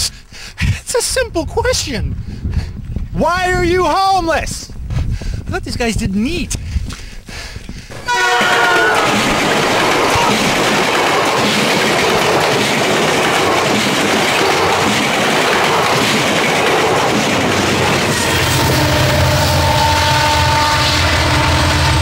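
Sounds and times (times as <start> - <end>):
train rushing and rattling past: 7.9 - 22.0
train horn: 8.0 - 9.3, 18.0 - 22.0.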